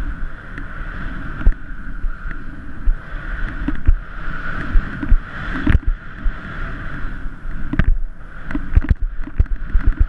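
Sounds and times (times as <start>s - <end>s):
low rumble of riding through snow: 0.0s - 10.0s
wind rushing over camera: 0.0s - 10.0s.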